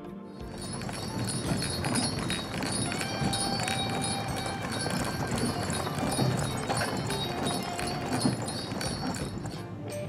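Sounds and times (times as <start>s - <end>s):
harness bells ringing: 0.4s - 10.0s
horse hooves clopping on dirt: 0.4s - 10.0s.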